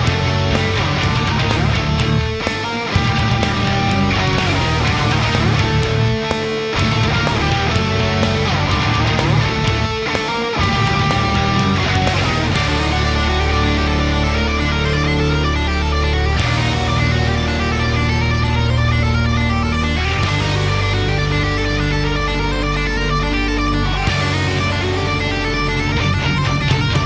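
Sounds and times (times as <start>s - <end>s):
bass guitar: 0.0s - 27.0s
distorted electric guitars: 0.0s - 27.0s
drums: 0.0s - 27.0s.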